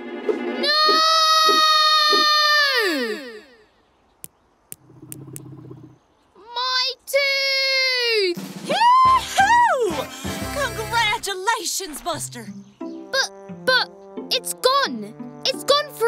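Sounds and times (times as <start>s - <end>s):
sharp clicks: 4.2s - 5.7s.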